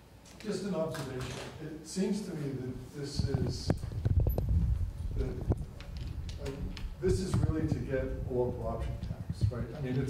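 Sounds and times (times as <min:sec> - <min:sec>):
microphone handling knocks: 0:03.2 - 0:10.0.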